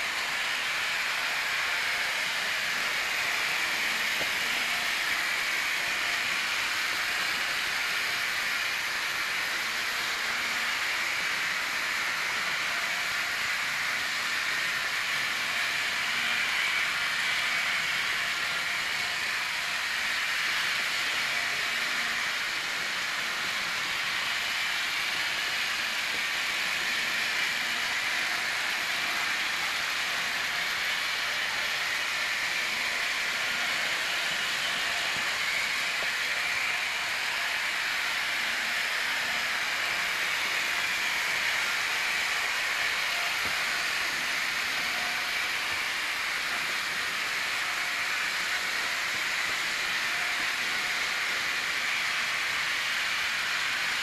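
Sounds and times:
model trains whirring on track: 0.0 - 54.0.

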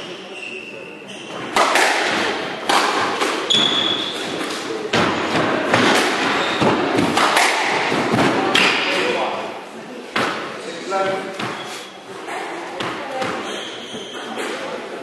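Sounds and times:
squash racket strikes: 1.2 - 9.2, 10.1 - 14.7
ball smacking court walls: 1.3 - 3.8, 4.4 - 8.9.

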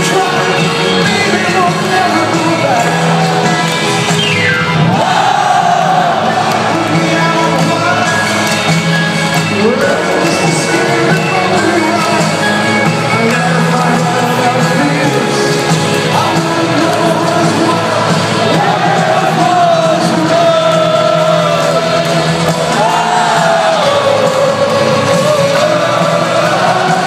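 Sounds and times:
crowd cheering and shouting: 0.0 - 27.0
rock band playing live: 0.0 - 27.0.

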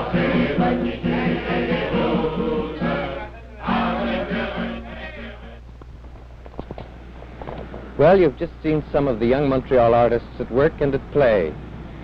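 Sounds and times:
group of people singing: 0.0 - 5.6.

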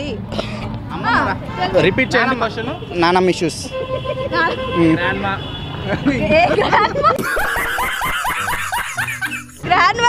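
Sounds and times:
person laughing: 6.0 - 9.6.

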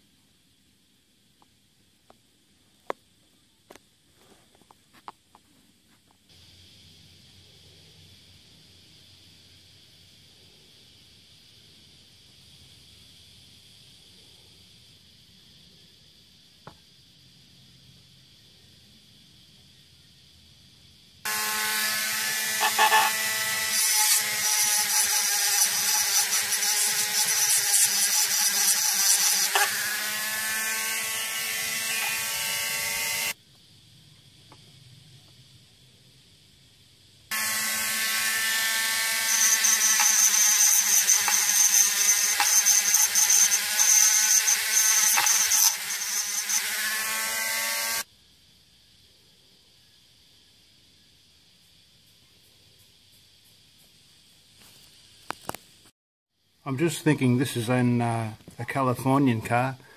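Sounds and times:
handheld electric tool whining: 21.3 - 33.4, 37.3 - 48.1.

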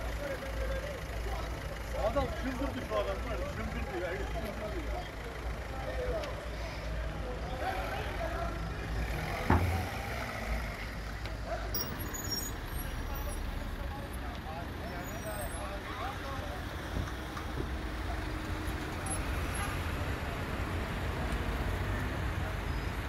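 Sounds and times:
distant voices: 0.0 - 23.0
low rumble of vehicle engines: 0.0 - 23.0
sharp thump: 9.4 - 9.9.

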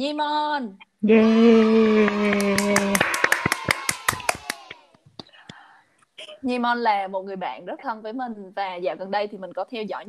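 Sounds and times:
rapid hand claps: 1.6 - 5.3.

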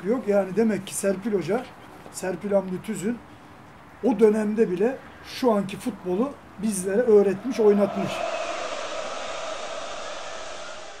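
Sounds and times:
steady rushing noise: 6.6 - 11.0.

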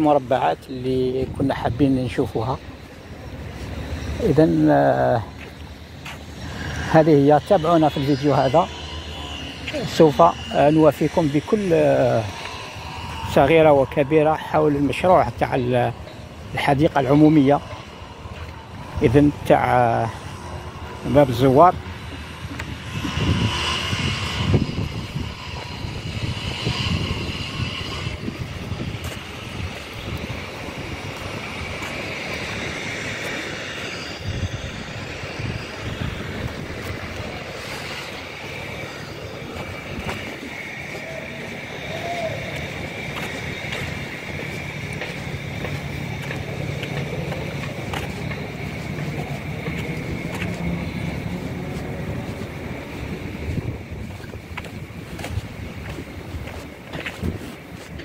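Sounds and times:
distant road traffic: 0.0 - 58.0
faint high hum: 0.0 - 58.0.

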